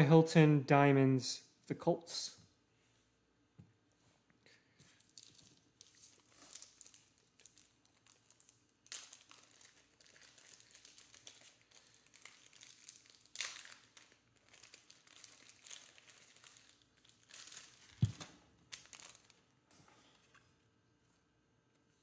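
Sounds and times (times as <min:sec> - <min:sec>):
plastic sleeve crinkling: 0:04.9 - 0:19.5.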